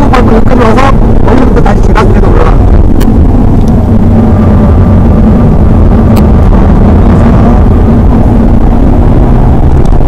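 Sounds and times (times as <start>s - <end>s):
car engine running: 0.0s - 10.0s
faint steady whine: 0.0s - 10.0s
road and tyre rumble: 0.0s - 10.0s.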